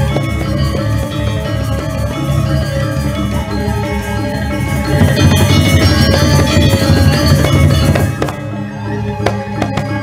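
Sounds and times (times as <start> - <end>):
gamelan playing: 0.0 - 10.0.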